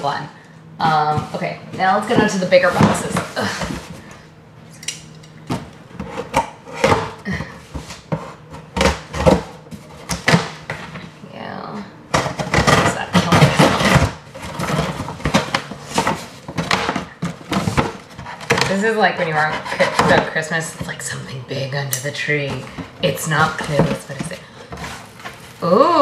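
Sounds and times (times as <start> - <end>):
cardboard scraping and ripping: 12.3 - 18.8.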